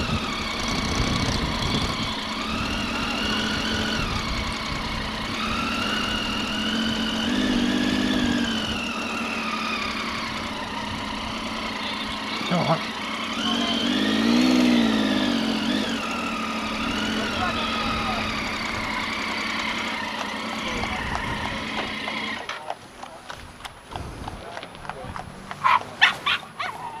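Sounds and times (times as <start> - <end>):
motorcycle engine running: 0.0 - 27.0.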